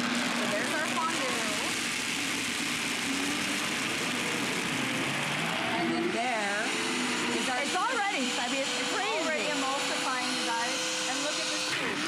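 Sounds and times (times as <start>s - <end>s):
blender motor whirring: 0.0s - 12.0s.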